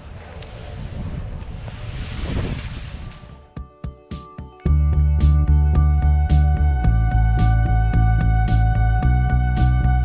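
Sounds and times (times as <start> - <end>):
skis sliding over packed snow: 0.0 - 3.6
wind rushing over microphone: 0.0 - 3.6
music: 3.1 - 10.0.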